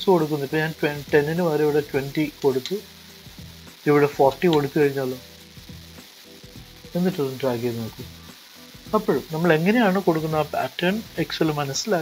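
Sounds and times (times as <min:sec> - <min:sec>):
low background hiss: 0:00.0 - 0:12.0
person speaking: 0:06.9 - 0:08.1.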